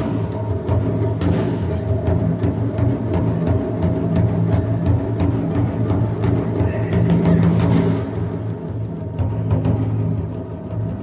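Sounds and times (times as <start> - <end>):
taiko drums booming: 0.0 - 11.0.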